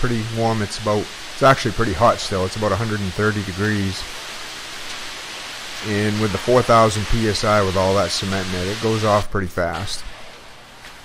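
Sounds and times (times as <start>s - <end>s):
steady even hiss: 0.0s - 11.0s.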